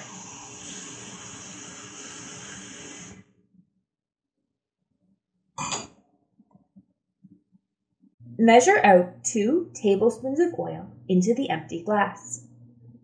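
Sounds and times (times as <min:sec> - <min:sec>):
faucet running into a glass: 0:00.0 - 0:03.2.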